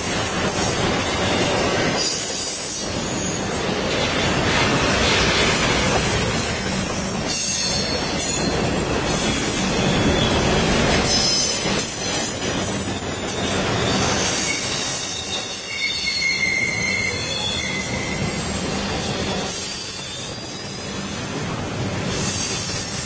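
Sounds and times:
train cars rumbling on rails: 0.0 - 23.0
high-pitched wheel squeal: 12.8 - 21.2.

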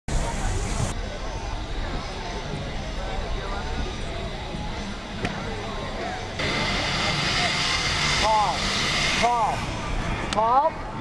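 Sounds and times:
skis sliding hiss: 6.4 - 10.0.

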